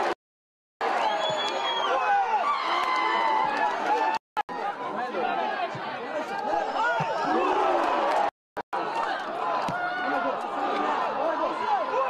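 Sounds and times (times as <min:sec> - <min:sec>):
crowd shouting and calling: 0:00.8 - 0:12.0
crowd chatter: 0:03.5 - 0:12.0.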